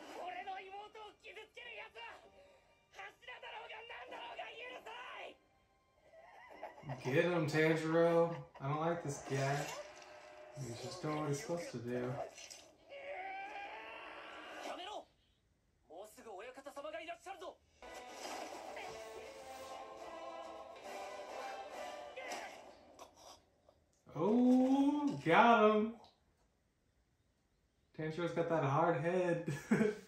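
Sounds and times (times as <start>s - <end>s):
music: 2.0s - 3.9s, 17.8s - 22.9s
person speaking: 6.8s - 9.8s, 24.1s - 26.0s
strained cry falling in pitch: 12.8s - 14.6s.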